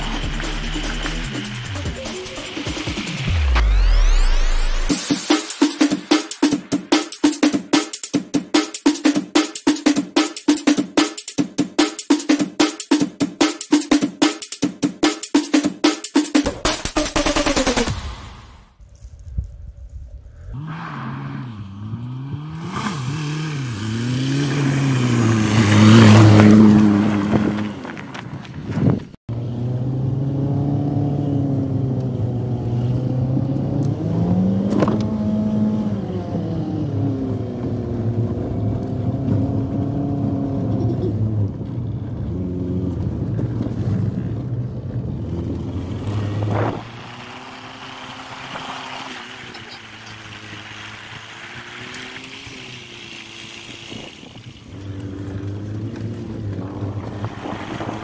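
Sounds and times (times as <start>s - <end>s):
car engine revving: 0.0s - 7.8s, 20.5s - 28.2s, 29.3s - 58.0s.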